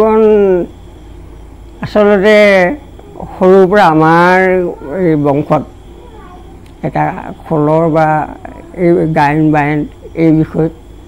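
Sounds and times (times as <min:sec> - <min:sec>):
man speaking: 0:00.0 - 0:00.8, 0:01.8 - 0:05.8, 0:06.8 - 0:10.9.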